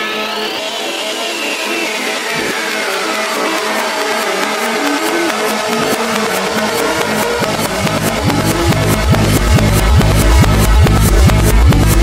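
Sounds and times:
rhythmic percussion ticks: 0:01.9 - 0:12.0.

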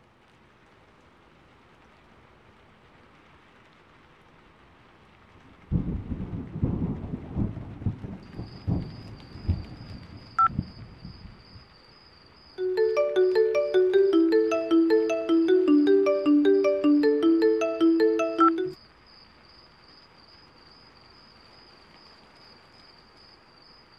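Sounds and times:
steady rain: 0:00.0 - 0:23.9
thunderclap: 0:05.7 - 0:10.8
rolling crackling thunder: 0:05.7 - 0:11.3.

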